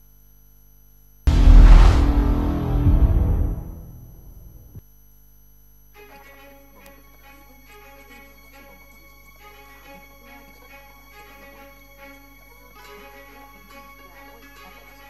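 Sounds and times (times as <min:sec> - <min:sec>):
deep cinematic boom hit: 0:01.3 - 0:04.8.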